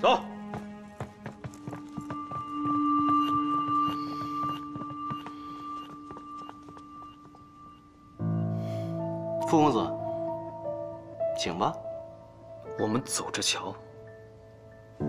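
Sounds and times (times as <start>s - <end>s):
soft background music: 0.0s - 15.0s
footsteps of group walking: 0.3s - 7.9s.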